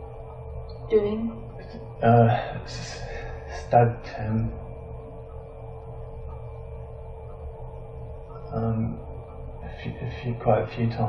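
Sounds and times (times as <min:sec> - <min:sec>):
electrical hum: 0:00.0 - 0:11.0
low rumble: 0:00.0 - 0:11.0.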